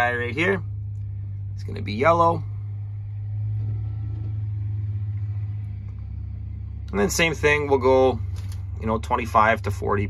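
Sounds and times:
engine humming at idle: 0.0 - 10.0.

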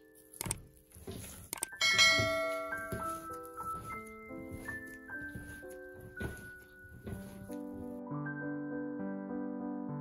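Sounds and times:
soft background music: 0.0 - 10.0
bright bell chime: 1.8 - 4.6.

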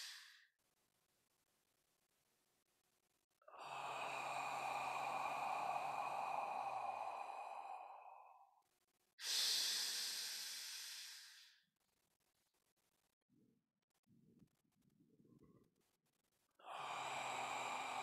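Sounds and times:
man breathing deeply: 0.0 - 0.4, 3.5 - 8.4, 9.2 - 11.6, 16.6 - 18.0.

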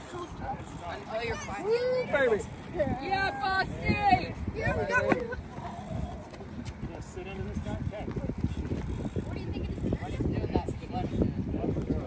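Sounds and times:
faint voices talking: 0.0 - 12.0
wind rumbling on microphone: 0.0 - 12.0.

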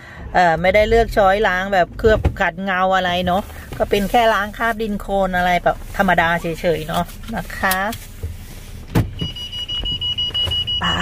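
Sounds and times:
high-pitched electronic warning tone: 9.2 - 11.0.

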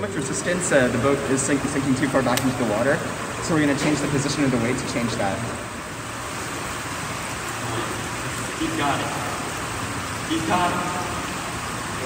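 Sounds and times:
pool hall hiss: 0.0 - 12.0.

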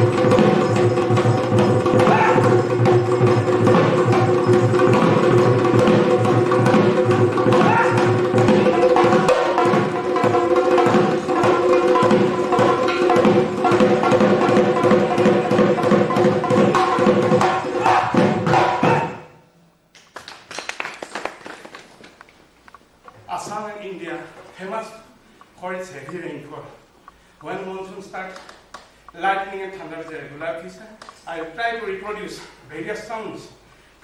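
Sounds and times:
barrel drum fast rhythm: 0.0 - 19.2.

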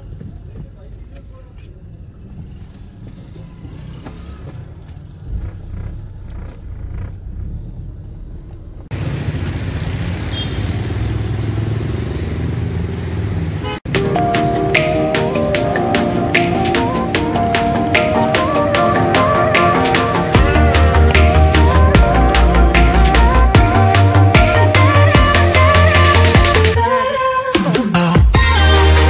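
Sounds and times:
car and road noise: 0.0 - 26.9
car engine rumble in cabin: 0.2 - 9.0
background music: 13.9 - 29.0.

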